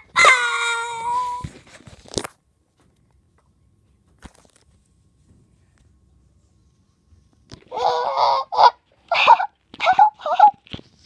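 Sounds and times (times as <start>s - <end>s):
high-pitched squealing voice: 0.0s - 1.5s, 7.7s - 10.6s.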